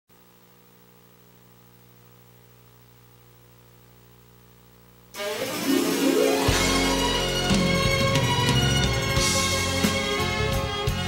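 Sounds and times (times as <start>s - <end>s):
faint electrical hum: 0.1s - 8.5s
recorded enka backing track: 5.2s - 11.0s.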